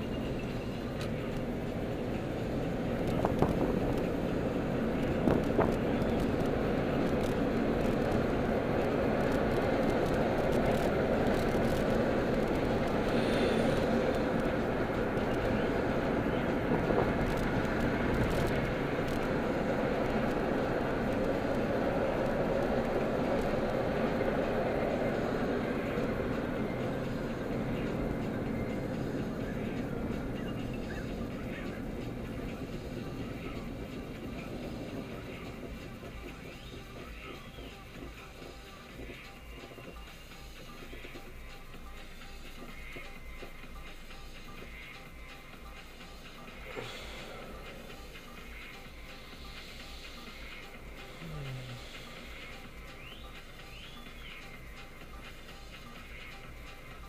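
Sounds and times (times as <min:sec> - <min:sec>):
car road and engine noise: 0:00.0 - 0:57.0.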